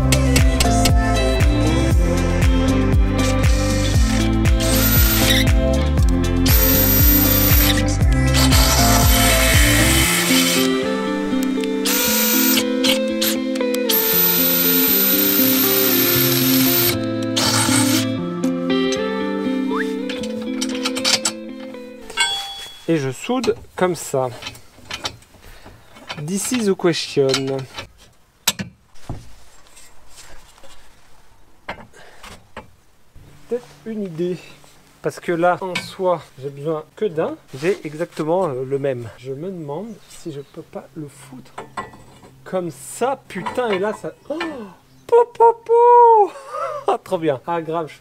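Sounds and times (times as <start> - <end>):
background music: 0.0 - 23.4
cordless drill boring into steel: 4.6 - 5.4, 6.5 - 10.8, 11.8 - 18.1.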